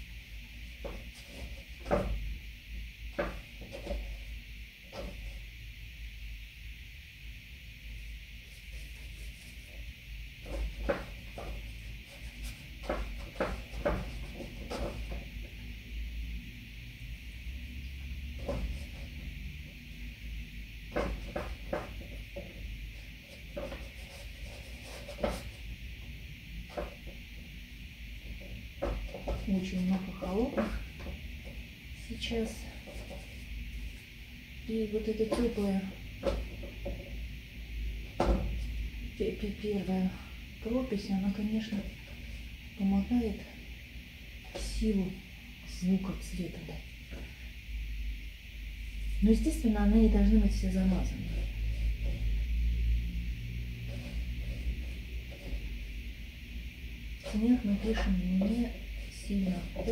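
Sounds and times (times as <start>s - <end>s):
steady hiss: 0.0s - 59.9s.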